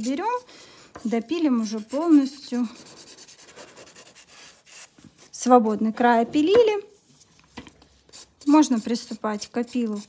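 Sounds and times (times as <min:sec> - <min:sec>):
nail file rubbing on nail: 0:00.0 - 0:05.4, 0:08.1 - 0:10.0.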